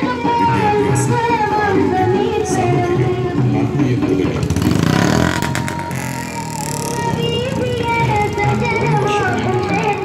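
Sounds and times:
background music: 0.0 - 10.0
motor vehicle passing: 4.3 - 10.0.

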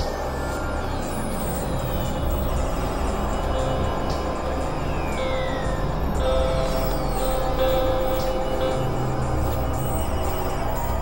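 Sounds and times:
experimental electronic noise drones: 0.0 - 11.0.

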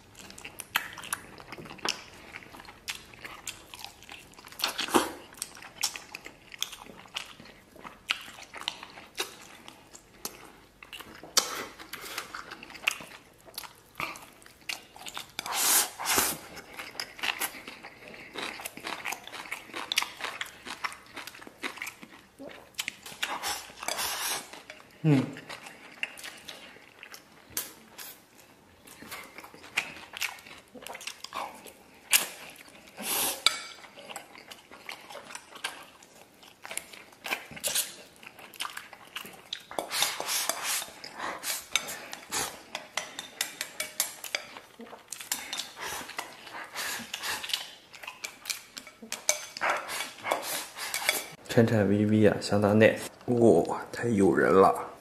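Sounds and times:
man chewing: 0.0 - 51.5
chopsticks scraping ceramic bowl: 39.7 - 44.6, 45.3 - 51.4.

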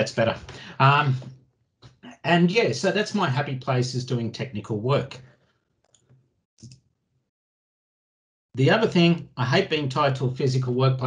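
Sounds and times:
man's voice: 0.0 - 1.3, 2.1 - 5.2, 8.6 - 11.0.

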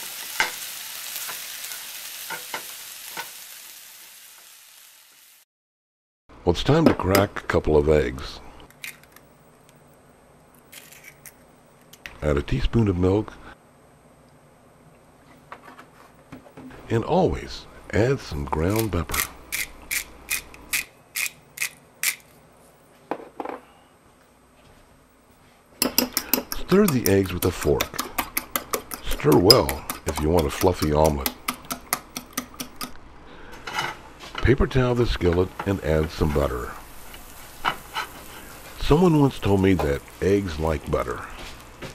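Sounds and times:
fork beating eggs in bowl: 25.8 - 32.9.

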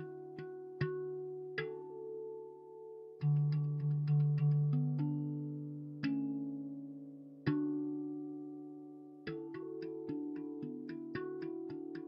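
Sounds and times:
handpan notes ringing: 0.0 - 12.0.

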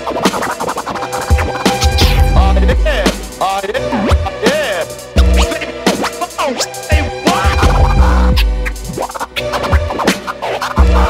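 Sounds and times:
hip-hop beat with bass and kick: 0.0 - 11.0
turntable scratching: 0.0 - 11.0.

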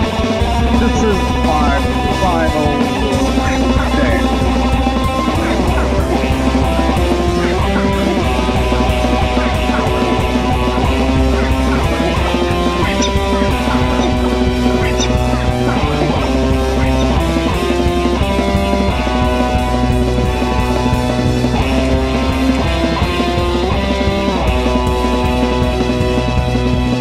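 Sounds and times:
electric guitar with effects: 0.0 - 27.0
steady drum beat: 0.0 - 27.0.

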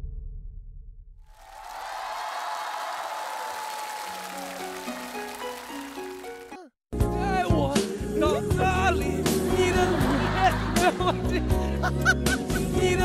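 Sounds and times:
audience applause: 1.3 - 6.7
instrumental song intro: 3.7 - 11.2.

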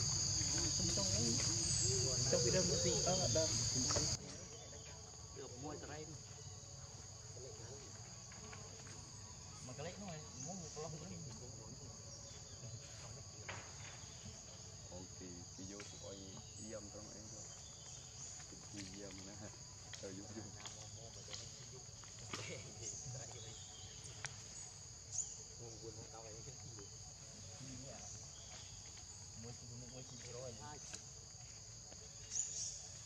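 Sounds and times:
high-pitched insect chorus: 0.0 - 33.0.

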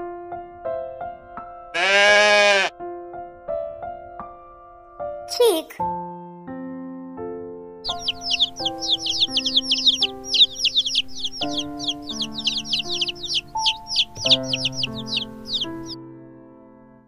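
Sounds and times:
baby chicks peeping: 7.8 - 16.0
keyboard music: 7.8 - 16.0.

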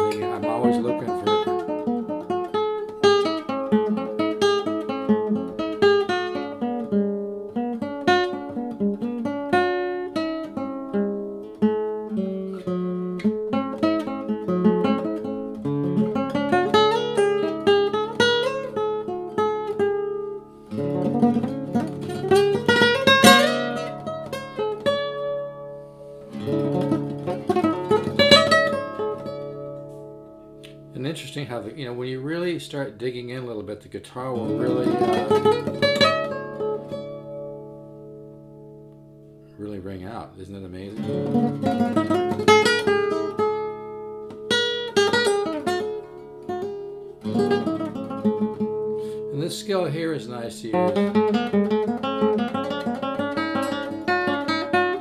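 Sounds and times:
classical guitar fingerpicking: 0.0 - 55.0
guitar chords strummed: 0.0 - 55.0.

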